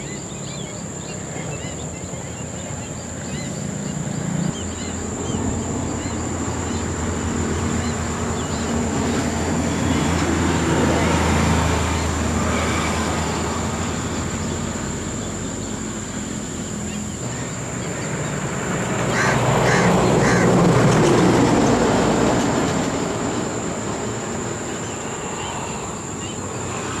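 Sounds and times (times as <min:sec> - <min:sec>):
distant vehicles rumbling: 0:00.0 - 0:27.0.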